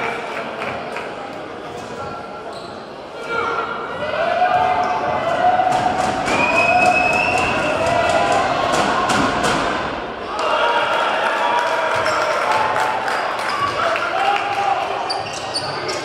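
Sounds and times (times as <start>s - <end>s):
overlapping voices of crowd: 0.0s - 1.7s, 5.3s - 15.1s.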